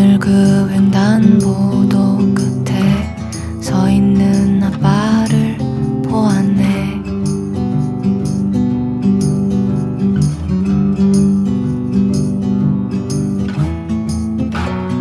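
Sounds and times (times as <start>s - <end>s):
acoustic guitar strumming: 0.0s - 15.0s.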